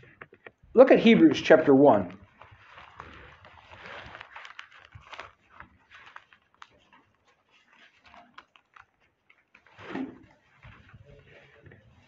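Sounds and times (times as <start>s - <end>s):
book pages turning: 0.0s - 12.0s.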